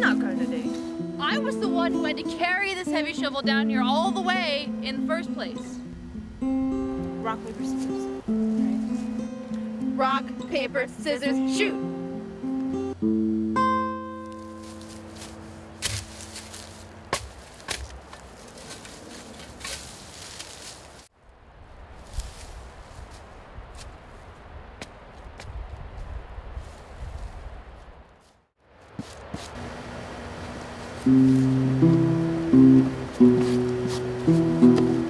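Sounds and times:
acoustic guitar notes: 0.0s - 17.2s, 29.6s - 35.0s
steady outdoor hiss: 0.0s - 35.0s
shovel digging into dry ground: 14.4s - 21.0s, 28.9s - 29.6s, 33.2s - 35.0s.

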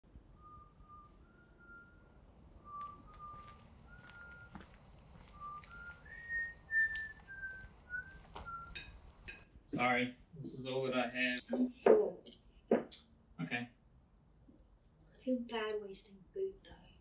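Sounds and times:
faint high-pitched tone: 0.1s - 13.8s
person whistling a tune: 2.6s - 4.6s, 5.3s - 8.9s.

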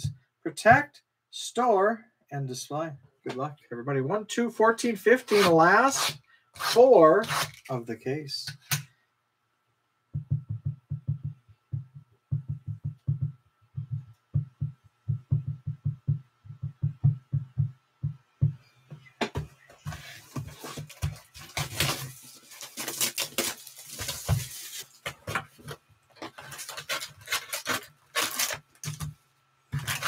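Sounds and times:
rapid short low thuds: 10.1s - 19.6s
cardboard taps and scrapes: 18.9s - 22.2s.

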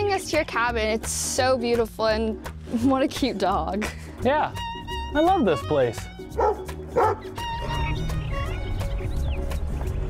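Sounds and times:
background music with low bass: 0.0s - 10.0s
dog barking: 6.4s - 7.3s.

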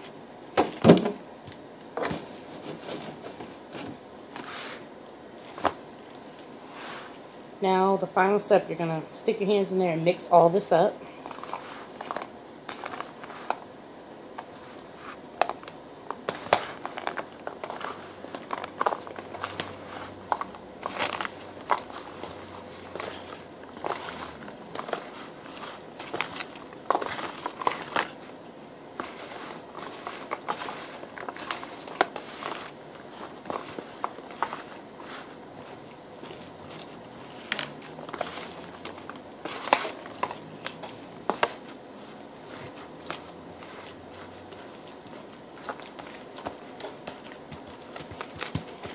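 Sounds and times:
foil pan crackling: 11.1s - 48.9s
hands squishing soaked bread: 11.1s - 48.9s.

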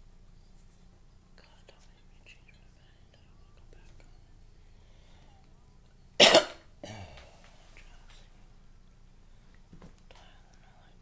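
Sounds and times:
steady low hum: 0.0s - 11.0s
faint whispering voice: 1.3s - 4.6s, 10.1s - 11.0s.

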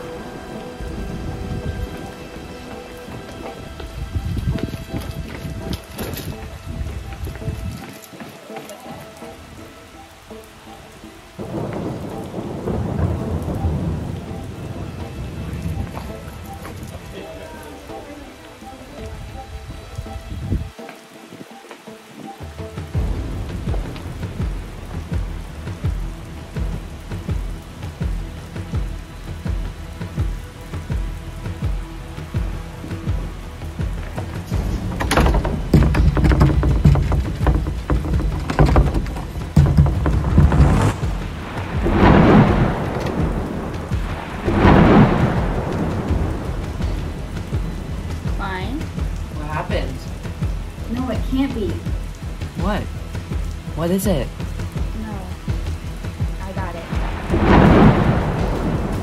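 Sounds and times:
eerie sustained tones: 0.0s - 7.2s
deep thunder-like rumbling: 0.0s - 7.8s, 11.3s - 18.1s, 22.8s - 59.0s
rain-like hiss: 0.0s - 59.0s.

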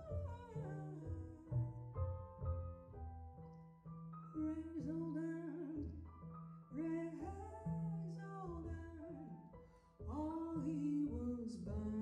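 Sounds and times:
woman singing jazz: 0.0s - 2.0s, 4.4s - 6.0s, 6.7s - 9.5s, 10.1s - 12.0s
piano: 0.0s - 12.0s
pizzicato upright bass: 0.0s - 12.0s.

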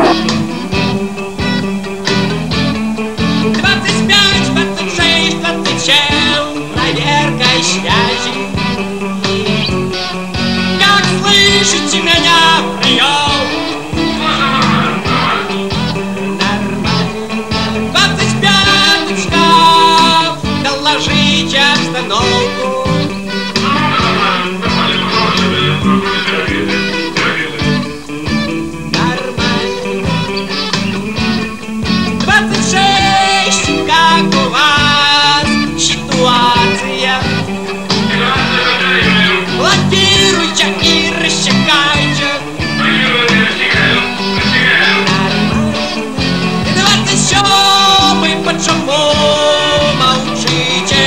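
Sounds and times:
rock band playing: 0.0s - 51.0s.

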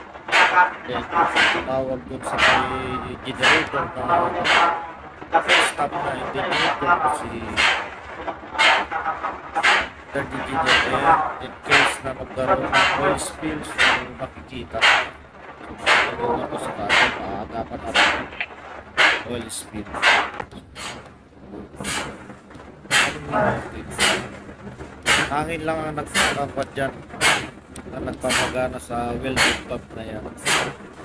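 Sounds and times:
person speaking: 0.3s - 7.9s, 8.7s - 18.5s, 19.1s - 22.1s, 22.9s - 24.4s, 25.1s - 30.8s
pump air exhaust hissing: 20.0s - 21.1s, 21.8s - 22.2s, 22.9s - 23.3s, 24.0s - 24.3s, 25.0s - 25.4s, 26.1s - 26.4s, 27.2s - 27.5s, 30.4s - 30.8s.

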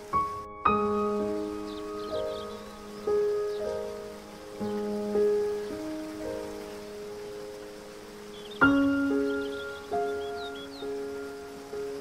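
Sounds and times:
faint running water: 0.0s - 12.0s
slow gentle solo piano: 0.0s - 12.0s.

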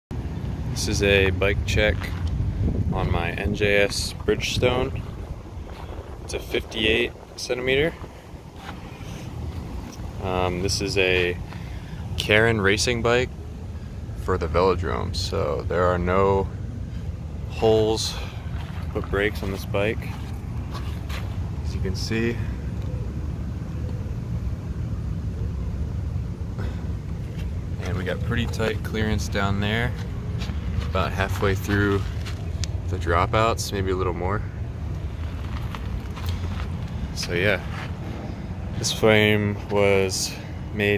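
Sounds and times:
low outdoor rumble: 0.1s - 40.9s
wind buffeting microphone: 0.2s - 14.2s.

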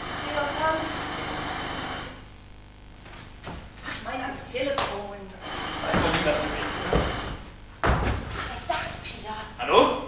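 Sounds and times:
telephone bell ringing: 0.0s - 2.3s, 5.4s - 7.5s.

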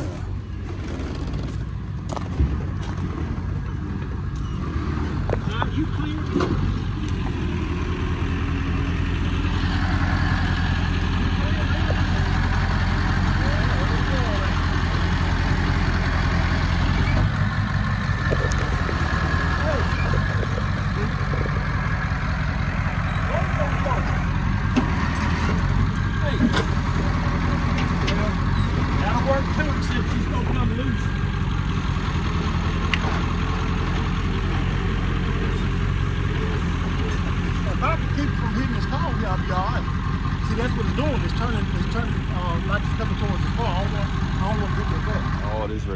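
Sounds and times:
truck engine running: 0.0s - 45.9s.

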